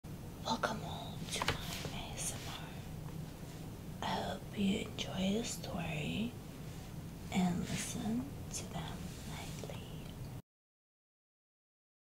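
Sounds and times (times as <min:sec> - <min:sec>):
low steady hum: 0:00.1 - 0:10.4
woman whispering: 0:00.4 - 0:02.9, 0:04.0 - 0:06.3, 0:07.3 - 0:10.2.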